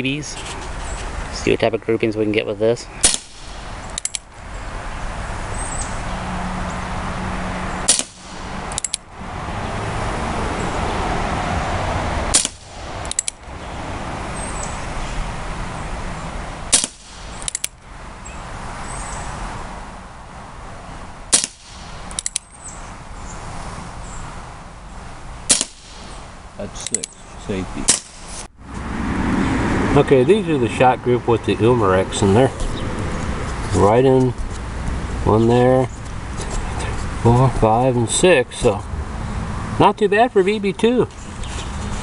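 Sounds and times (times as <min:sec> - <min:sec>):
air pistol shots popping: 0:03.0 - 0:04.3, 0:07.8 - 0:09.0, 0:12.3 - 0:13.4, 0:16.7 - 0:17.8, 0:21.3 - 0:22.5, 0:25.5 - 0:26.2, 0:27.8 - 0:28.4.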